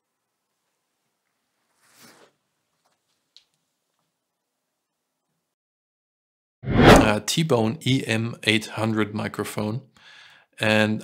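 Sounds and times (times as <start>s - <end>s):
faint clothing rustle: 0.5s - 4.2s.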